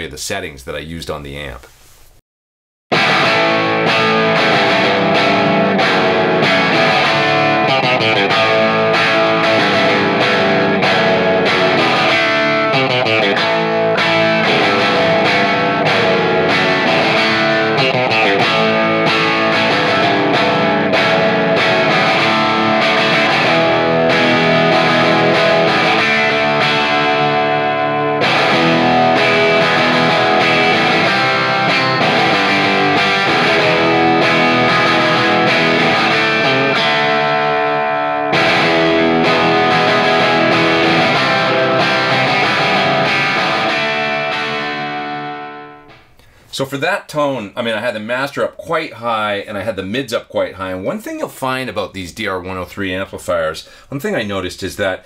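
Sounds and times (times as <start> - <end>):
distorted electric guitar chords: 2.9 - 46.3.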